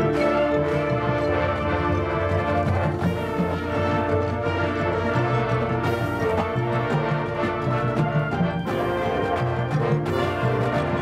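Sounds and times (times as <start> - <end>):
marching band brass chords: 0.0 - 11.0
marching band percussion: 0.0 - 11.0.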